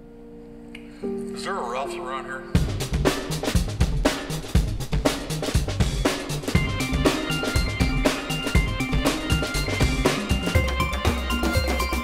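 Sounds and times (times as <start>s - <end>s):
band playing: 2.6s - 12.0s.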